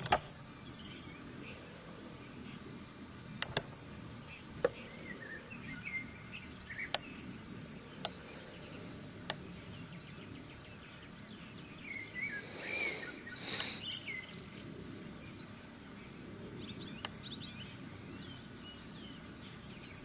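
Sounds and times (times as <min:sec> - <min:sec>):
sharp clicks or knocks: 0:00.0 - 0:00.3
faint bird chirps: 0:00.0 - 0:20.0
insects chirring: 0:00.0 - 0:20.0.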